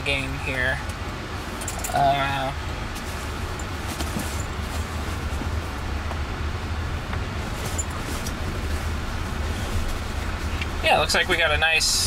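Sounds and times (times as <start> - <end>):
tyre and road rumble: 0.0 - 12.0.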